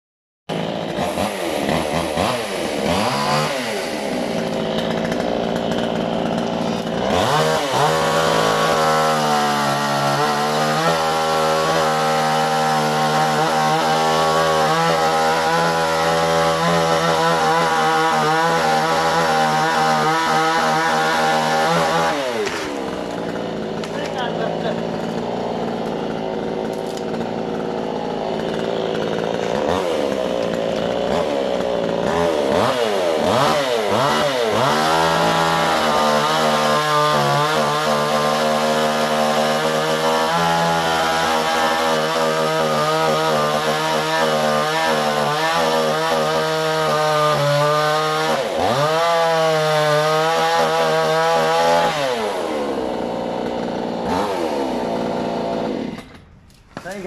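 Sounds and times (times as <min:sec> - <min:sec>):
chainsaw engine revving: 0:00.5 - 0:57.0.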